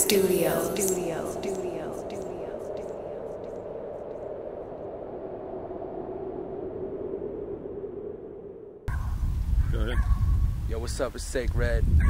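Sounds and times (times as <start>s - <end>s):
low humming drone: 0.0s - 9.3s
low outdoor wind rumble: 0.0s - 12.0s
man speaking: 9.8s - 10.0s, 10.7s - 11.9s.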